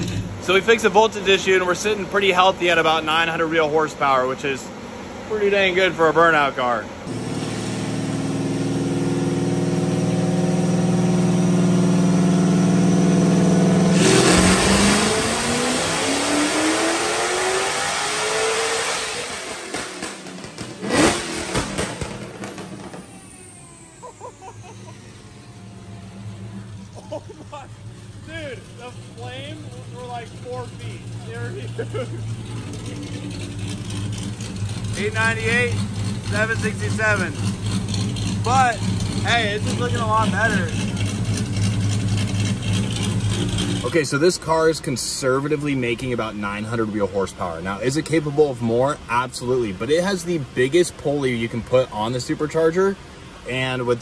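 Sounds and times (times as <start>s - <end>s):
car engine revving on dyno: 7.0s - 44.0s
falling supercharger whine: 7.1s - 44.0s
engine backfire bang: 19.0s - 26.9s
engine idling: 21.9s - 44.0s.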